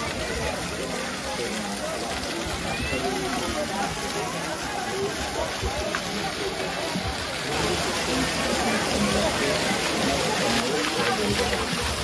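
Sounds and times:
crowd chattering: 0:00.0 - 0:12.0
fountain water splashing: 0:00.0 - 0:12.0.

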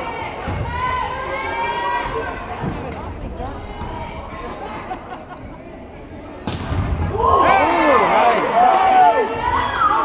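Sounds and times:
people shouting and cheering: 0:07.0 - 0:10.0.

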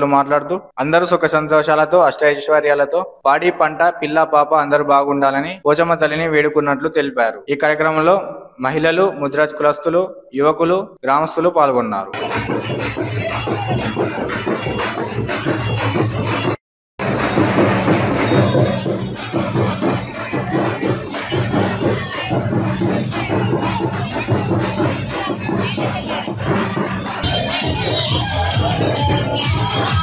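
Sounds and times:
crowd shouting: 0:12.2 - 0:30.0
procession music with drumming: 0:12.2 - 0:30.0.

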